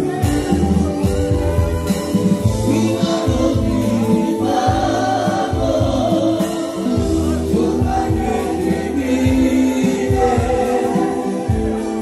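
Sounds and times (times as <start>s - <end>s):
band music: 0.0s - 12.0s
voices singing together: 2.4s - 12.0s.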